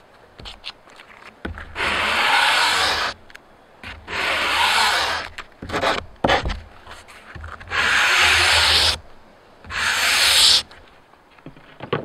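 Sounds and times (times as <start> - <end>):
hand sanding wood: 1.8 - 3.2, 4.1 - 9.0, 9.7 - 10.8.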